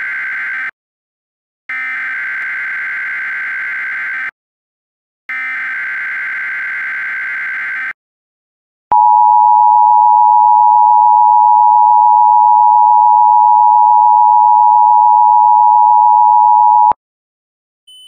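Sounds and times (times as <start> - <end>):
two-tone alarm: 8.9 - 17.0.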